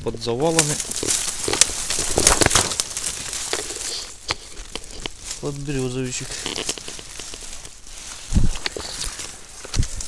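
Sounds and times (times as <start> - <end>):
dry branches and leaves crackling: 0.0 - 10.0.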